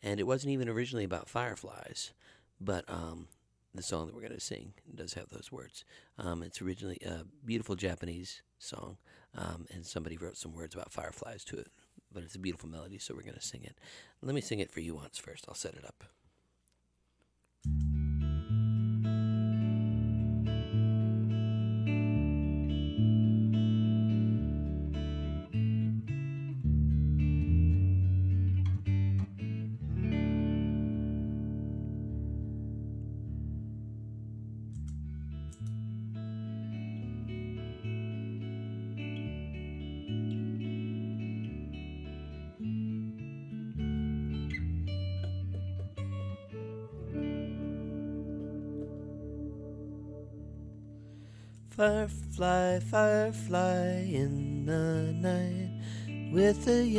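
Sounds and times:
solo guitar playing: 17.6s - 56.9s.

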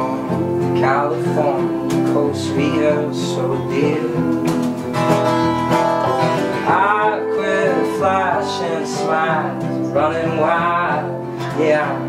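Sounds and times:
strummed acoustic guitar: 0.0s - 12.0s.

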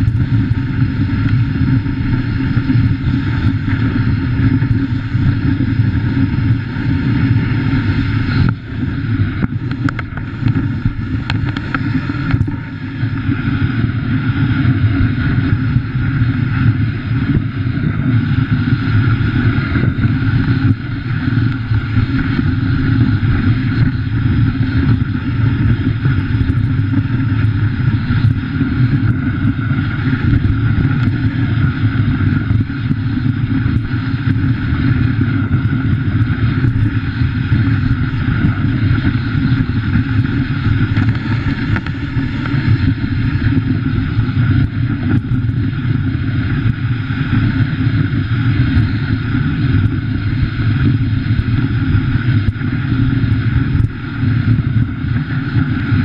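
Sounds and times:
sled runners sliding over snow: 0.0s - 56.0s.

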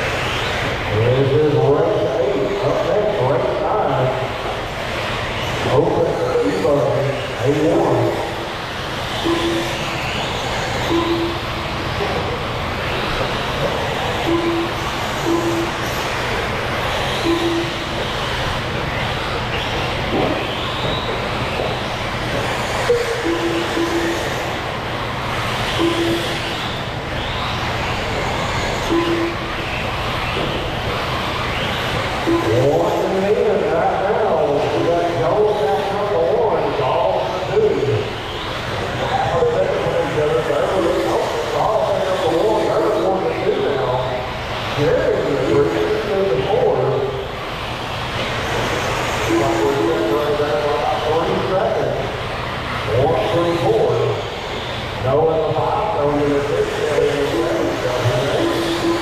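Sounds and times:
rc car motor whine: 0.0s - 59.0s
people talking: 0.9s - 4.5s, 5.6s - 8.4s, 32.3s - 38.2s, 38.8s - 47.4s, 49.2s - 52.2s, 52.9s - 54.3s, 55.0s - 59.0s
short single-pitch beeps: 9.2s - 10.0s, 10.8s - 11.6s, 14.2s - 15.8s, 17.2s - 17.9s, 22.9s - 24.3s, 25.8s - 26.5s, 28.9s - 29.5s, 32.3s - 32.6s.

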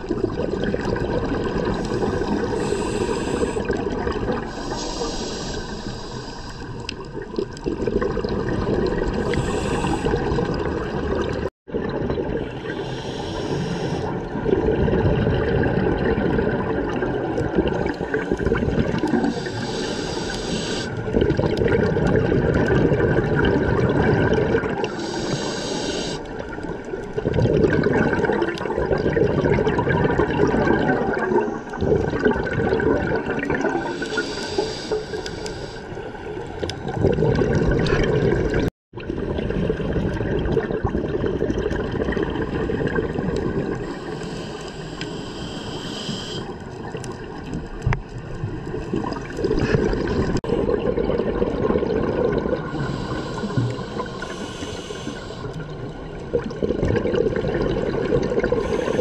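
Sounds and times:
exhaled bubbles burbling: 0.0s - 5.6s, 6.6s - 34.6s, 36.3s - 44.6s, 46.1s - 59.0s
underwater rushing: 0.0s - 59.0s
diver inhaling through regulator: 1.8s - 3.8s, 4.4s - 6.9s, 9.2s - 10.6s, 12.6s - 14.2s, 17.9s - 21.0s, 24.9s - 26.6s, 33.8s - 36.1s, 43.8s - 46.6s, 52.7s - 55.7s, 58.4s - 59.0s.

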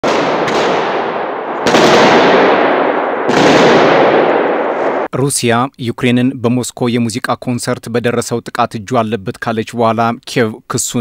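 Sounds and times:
automatic gunfire echoing indoors: 0.0s - 5.1s.

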